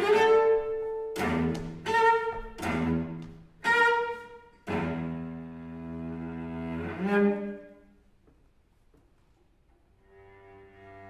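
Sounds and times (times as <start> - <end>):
bowed cello: 0.0 - 8.0, 9.9 - 11.0.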